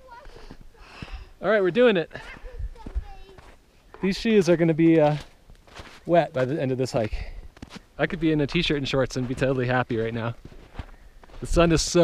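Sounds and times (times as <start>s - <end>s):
footsteps in snow: 2.2s - 12.0s.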